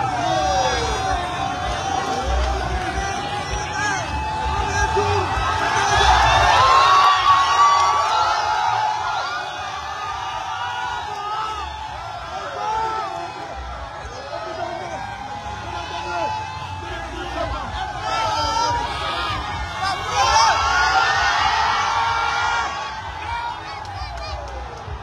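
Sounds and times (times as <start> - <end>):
crowd cheering and shouting: 0.0 - 25.0.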